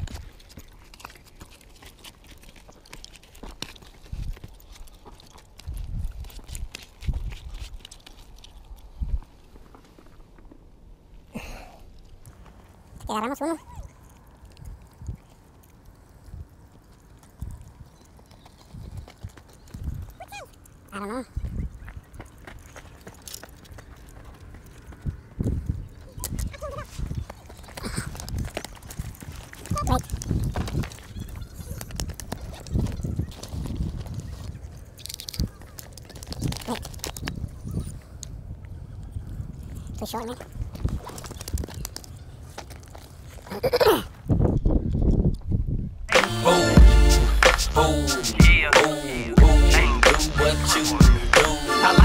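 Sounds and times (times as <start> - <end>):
brief vocal sounds: 46.1 - 52.0.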